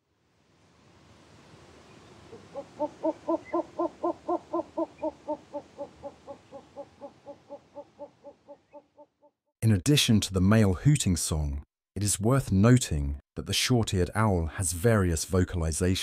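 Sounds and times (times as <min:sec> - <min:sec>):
soft steady hiss: 0:00.0 - 0:08.8
owl hooting: 0:02.3 - 0:09.1.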